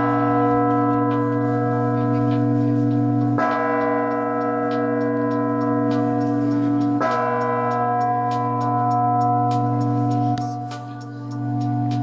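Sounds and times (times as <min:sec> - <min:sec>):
large church bells ringing: 0:00.0 - 0:12.0.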